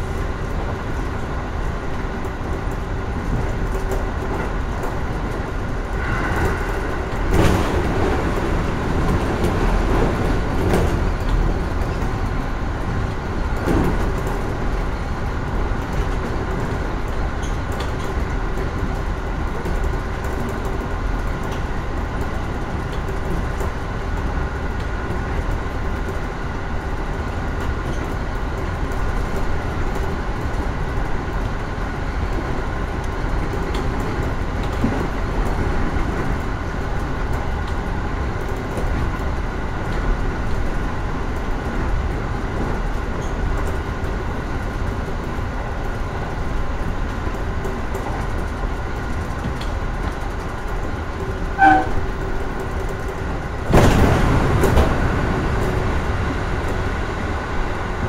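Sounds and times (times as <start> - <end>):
train wheels rumbling on rail: 0.0 - 58.0.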